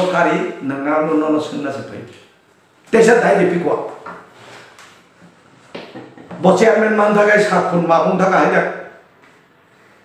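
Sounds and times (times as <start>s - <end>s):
man talking: 0.0s - 2.3s, 2.9s - 4.0s, 6.3s - 9.0s
faint room noise: 0.0s - 10.0s.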